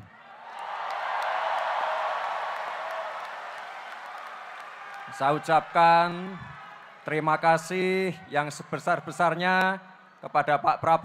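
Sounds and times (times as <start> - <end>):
crowd cheering and applauding: 0.0 - 7.8.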